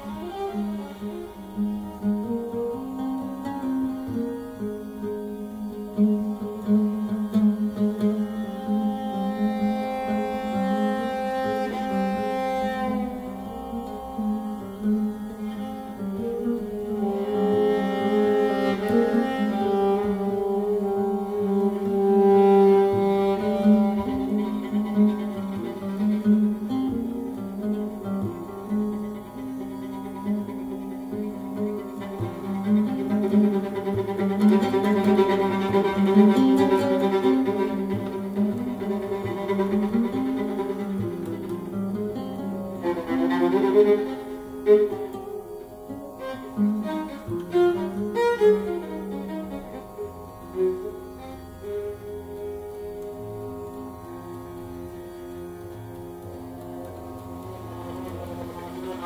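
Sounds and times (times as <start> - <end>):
oud plucking: 0.0 - 59.0
viola melody: 0.0 - 59.0.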